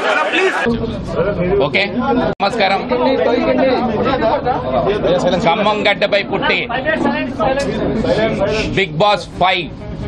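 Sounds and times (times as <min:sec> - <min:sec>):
man talking: 0:00.0 - 0:09.8
voices chattering: 0:00.0 - 0:10.0.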